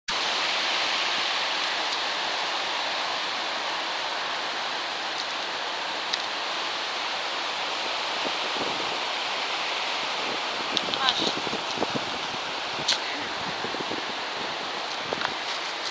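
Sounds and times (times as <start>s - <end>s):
waves breaking on pebble beach: 0.1s - 15.9s.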